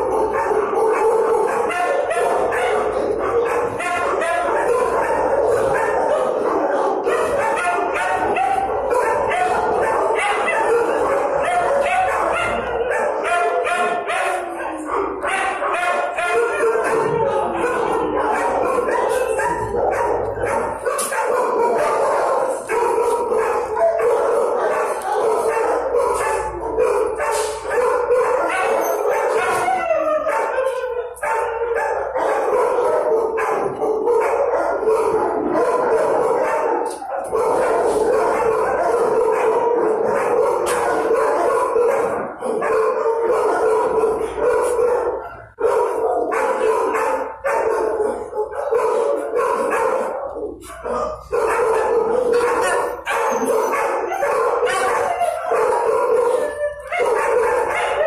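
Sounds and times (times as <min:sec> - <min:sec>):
many dogs barking: 0:00.0 - 0:58.0.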